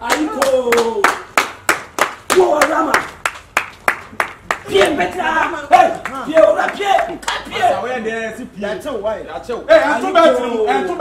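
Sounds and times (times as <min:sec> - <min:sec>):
rhythmic hand clapping: 0:00.0 - 0:07.5.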